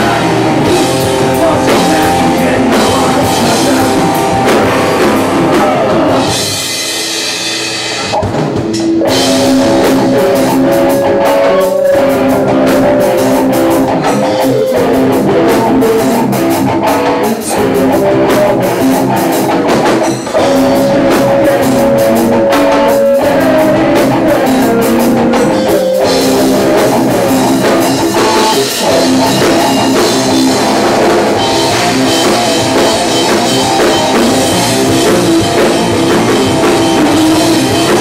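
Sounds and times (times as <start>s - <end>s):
drum kit: 0.0s - 38.0s
rock band playing live: 0.0s - 38.0s.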